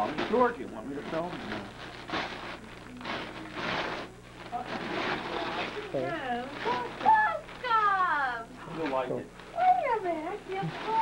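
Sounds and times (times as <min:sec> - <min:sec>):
wrapping paper tearing: 0:00.0 - 0:11.0.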